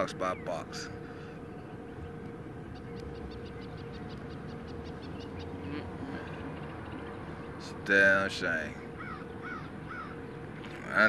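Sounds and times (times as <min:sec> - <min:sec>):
steady background hum: 0:00.0 - 0:11.0
faint bird calling: 0:02.7 - 0:07.6, 0:08.8 - 0:11.0.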